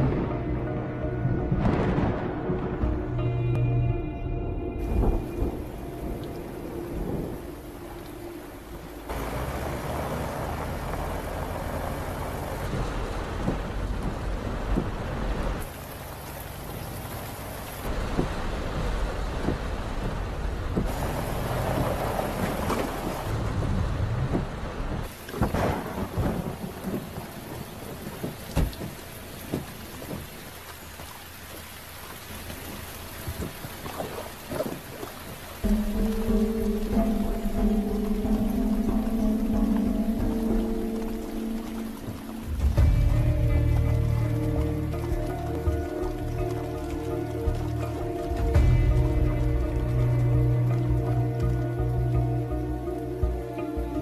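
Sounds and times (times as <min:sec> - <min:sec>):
heavy rain pouring: 0:00.0 - 0:03.8, 0:04.7 - 0:54.0
thunder cracks: 0:01.4 - 0:03.2, 0:20.8 - 0:28.5.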